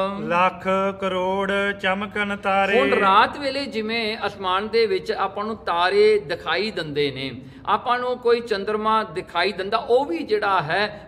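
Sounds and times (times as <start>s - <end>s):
man chanting devotional verse: 0.0s - 5.7s.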